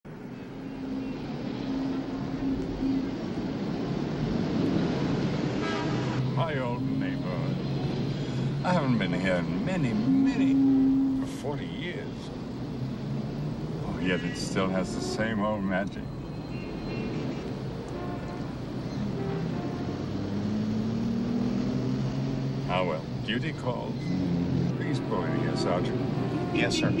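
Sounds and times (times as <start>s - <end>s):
street traffic: 0.0s - 27.0s
car engine and tyres approaching: 0.1s - 27.0s.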